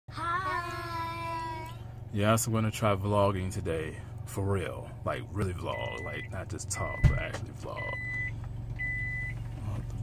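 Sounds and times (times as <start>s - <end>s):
low steady hum: 0.1s - 10.0s.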